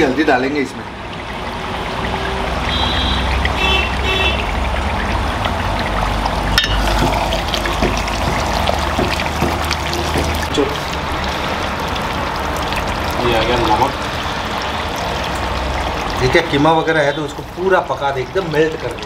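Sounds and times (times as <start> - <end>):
meat sizzling in oil: 5.9 - 19.0
metal spatula clinking pot: 6.6 - 7.0.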